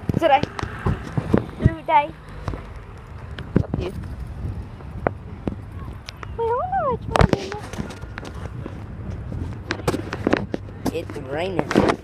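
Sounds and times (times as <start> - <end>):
footsteps on asphalt: 0.0 - 6.6, 7.2 - 12.0.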